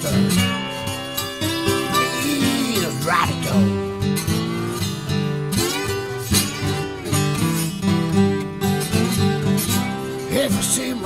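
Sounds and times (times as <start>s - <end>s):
acoustic guitars blues figure: 0.0s - 11.0s.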